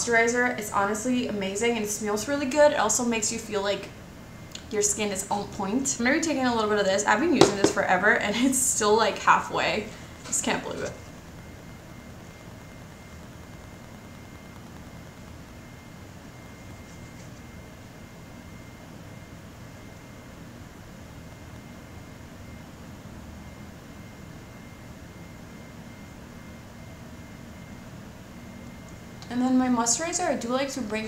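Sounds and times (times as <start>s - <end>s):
even hiss and hum: 0.0s - 31.0s.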